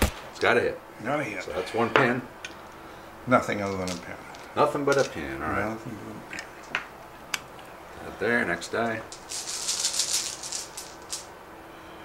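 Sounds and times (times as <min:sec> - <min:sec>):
dice rattling in a bag: 0:03.6 - 0:05.2, 0:08.8 - 0:11.3.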